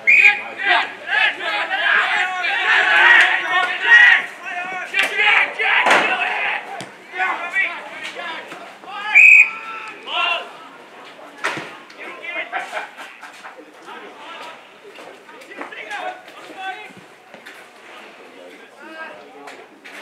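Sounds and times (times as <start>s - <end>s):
distant shouts of players: 0.0s - 10.9s.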